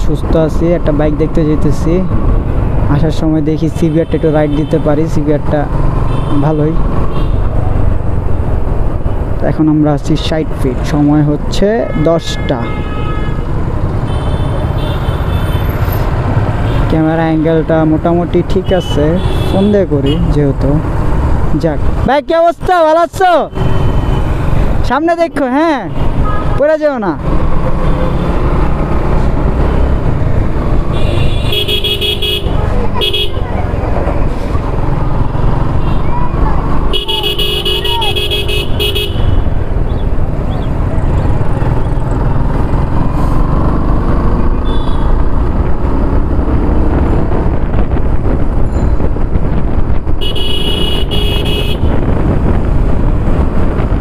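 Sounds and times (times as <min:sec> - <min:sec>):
vehicle horn honking: 0:11.8 - 0:13.5, 0:30.9 - 0:33.4, 0:36.9 - 0:39.5, 0:44.6 - 0:45.2, 0:50.2 - 0:51.9
motorcycle engine rumble: 0:27.2 - 0:54.0
wind rushing: 0:45.2 - 0:50.2, 0:51.8 - 0:54.0.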